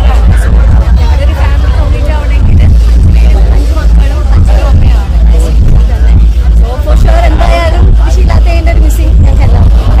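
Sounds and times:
loud low rumble: 0.0 - 10.0
voices talking: 0.0 - 10.0.

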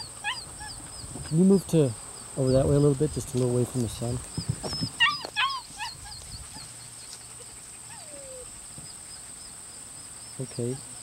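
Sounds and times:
puppy whining: 0.0 - 1.1, 4.4 - 8.6.

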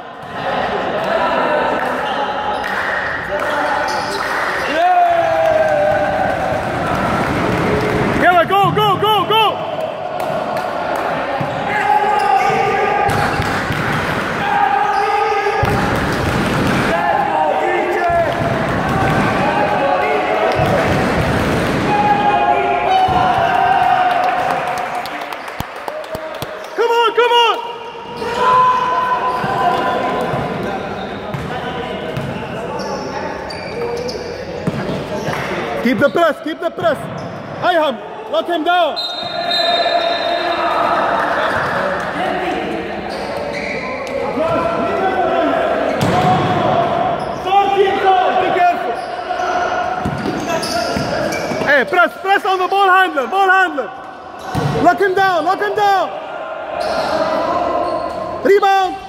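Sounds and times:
sneakers squeaking: 2.0 - 4.8, 11.4 - 14.0, 14.7 - 16.9, 28.0 - 37.6, 39.0 - 41.9, 43.0 - 44.3, 47.1 - 47.5, 48.8 - 52.0, 54.0 - 55.2, 56.7 - 59.0
people shouting: 4.6 - 24.7.

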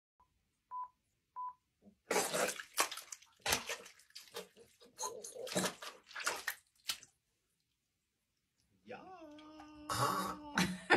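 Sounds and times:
wet sponge squelching: 2.1 - 7.8.

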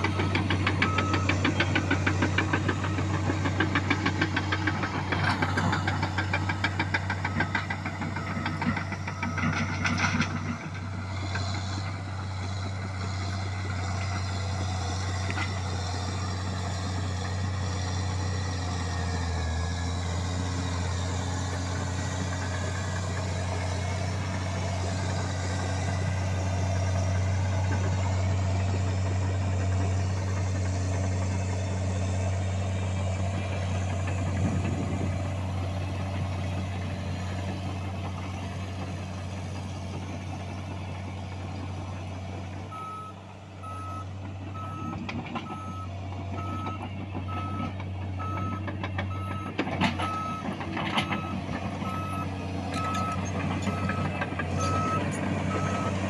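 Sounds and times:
reversing alarm beeping: 0.0 - 11.4, 42.7 - 56.0
diesel dozer engine under load: 0.0 - 56.0.

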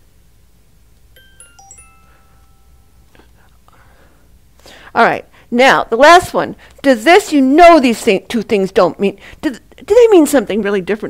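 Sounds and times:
short electronic chime: 1.2 - 3.1.

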